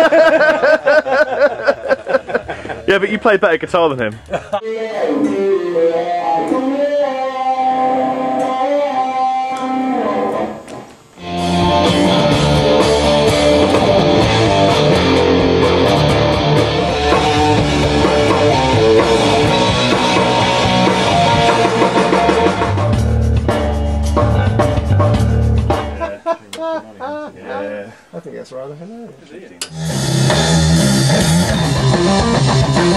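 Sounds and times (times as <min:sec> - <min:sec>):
electric guitar playing: 0:04.6 - 0:26.1, 0:29.6 - 0:32.9
drums and bass: 0:11.2 - 0:26.0, 0:29.7 - 0:32.9.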